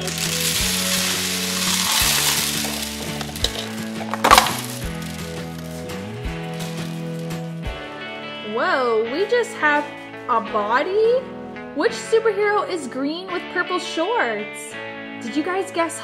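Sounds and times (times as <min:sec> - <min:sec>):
plastic beads rattling onto table: 0:00.0 - 0:05.9, 0:06.5 - 0:07.4.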